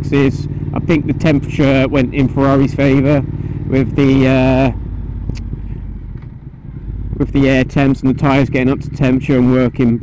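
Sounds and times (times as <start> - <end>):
motorcycle engine low rumble: 0.0 - 10.0.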